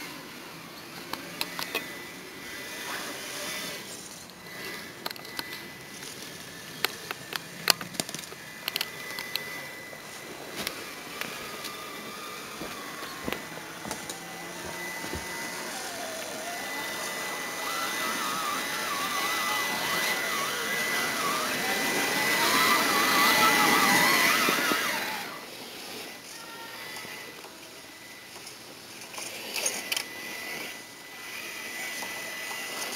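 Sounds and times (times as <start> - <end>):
toy car motor whining: 0.0 - 32.9.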